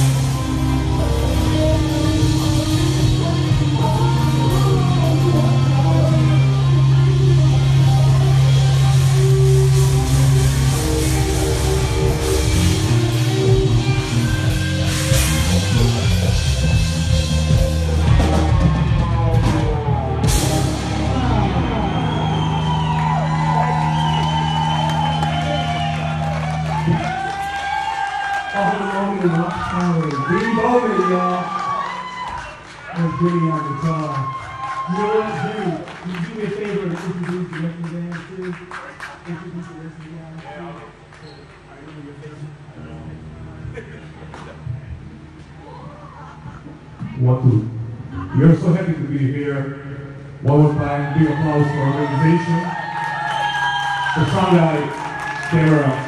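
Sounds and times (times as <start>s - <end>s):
guitar lead line bending: 0.0s - 27.9s
live blues-rock band playing: 0.0s - 28.2s.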